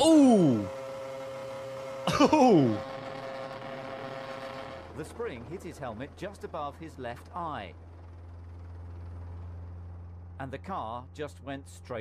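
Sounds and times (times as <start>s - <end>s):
racing car onboard noise: 0.0s - 6.4s
constant low hum: 0.0s - 12.0s.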